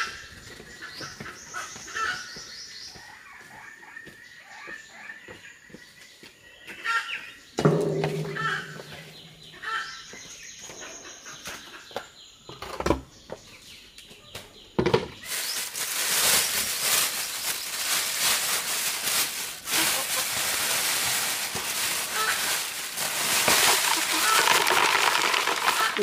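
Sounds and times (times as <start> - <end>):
plastic bag crinkling: 15.2 - 26.0.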